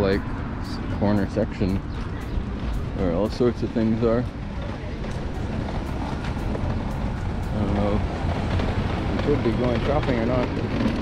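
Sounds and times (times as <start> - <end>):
street rumble: 0.0 - 11.0.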